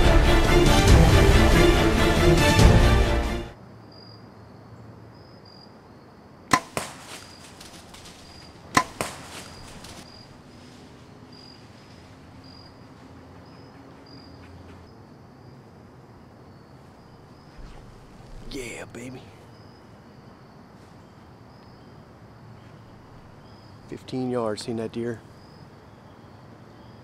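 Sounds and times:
bow shot snaps: 6.5s - 7.2s, 8.8s - 9.3s
faint high chirping: 11.3s - 15.5s.

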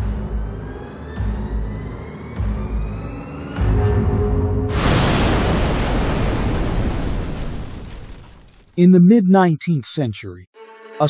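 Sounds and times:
deep explosion blast: 4.7s - 8.2s.

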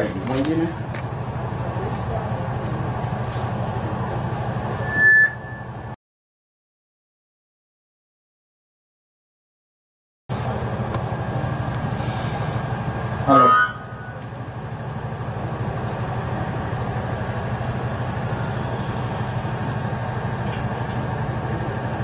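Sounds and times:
steady low hum: 0.0s - 6.0s, 10.3s - 22.0s
loud falling-pitch sound: 4.8s - 5.9s, 13.2s - 14.3s.

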